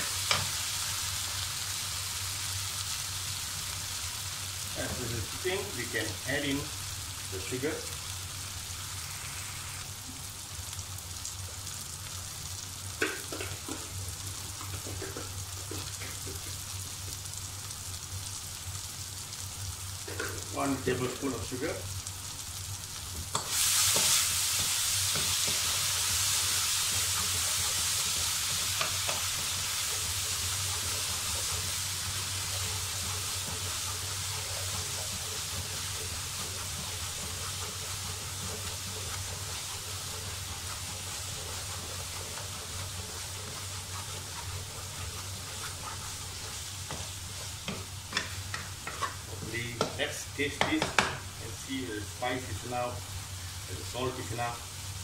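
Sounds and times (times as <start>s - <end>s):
vegetables sizzling in a wok: 0.0s - 55.0s
spatula scraping wok: 23.3s - 52.8s.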